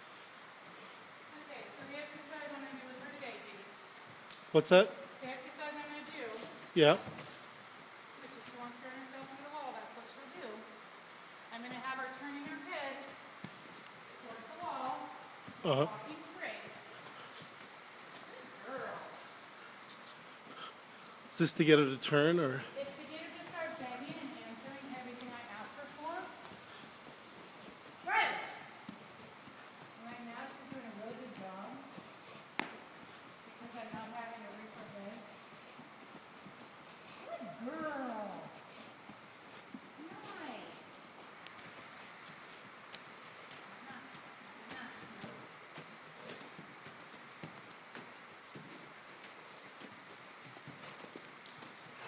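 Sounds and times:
horse hooves trotting on dirt: 0.0 - 52.0.

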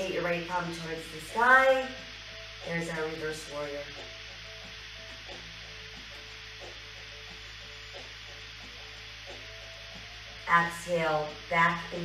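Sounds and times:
faint workout music: 0.0 - 12.0
low hum: 0.0 - 12.0
steady hiss: 0.0 - 12.0.

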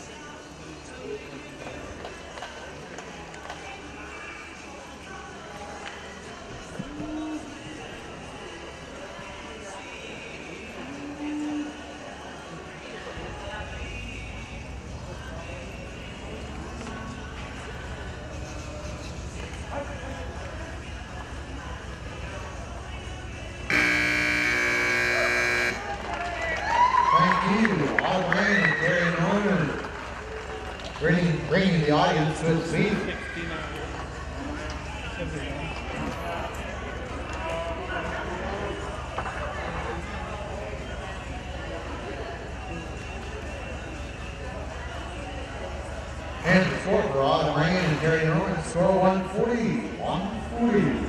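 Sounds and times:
indistinct voices: 6.6 - 26.0
arena music: 23.7 - 25.8
man speaking over loudspeaker: 27.2 - 29.8, 31.0 - 33.2, 46.4 - 51.0.

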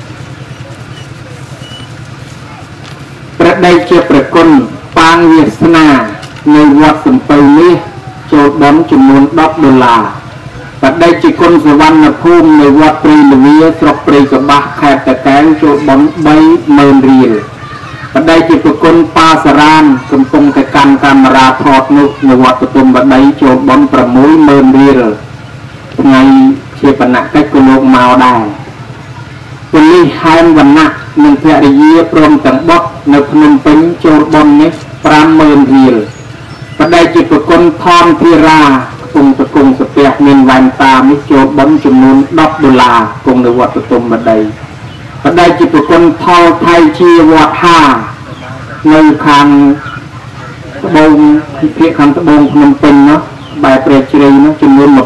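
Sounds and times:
steady low hum: 0.0 - 55.0.

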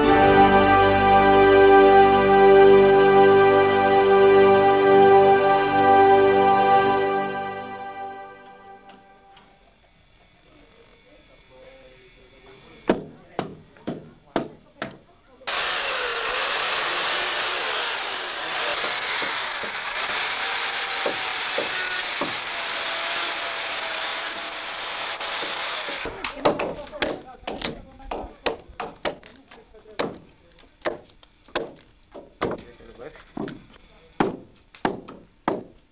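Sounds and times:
hammer blows on timber: 12.8 - 15.0, 20.8 - 22.5, 33.4 - 35.8
power saw cutting wood: 15.5 - 26.6.

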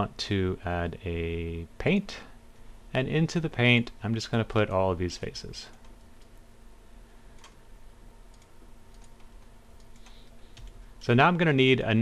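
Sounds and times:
faint steady hum: 0.0 - 12.0
computer mouse clicks: 7.4 - 7.6, 8.3 - 10.8.

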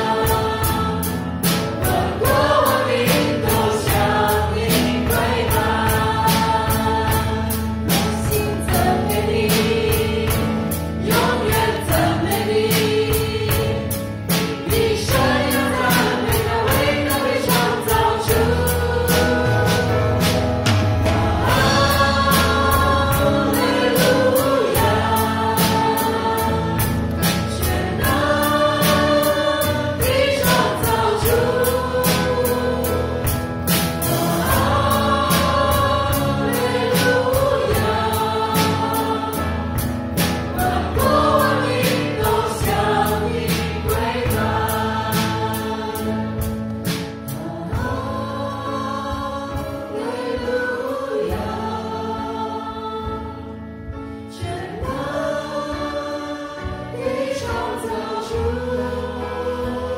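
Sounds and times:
drum kit steady beat: 0.0 - 59.9
keyboard: 0.0 - 59.9
people singing together: 0.0 - 59.9.

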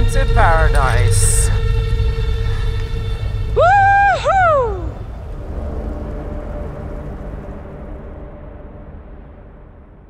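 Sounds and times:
deep rumble: 0.0 - 10.0.

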